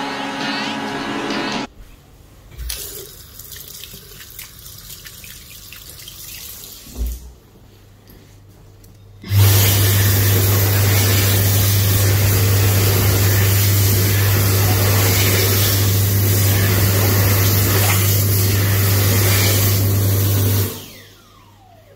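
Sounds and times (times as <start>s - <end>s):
hand dryer blasting air: 0.0s - 1.7s, 9.2s - 21.1s.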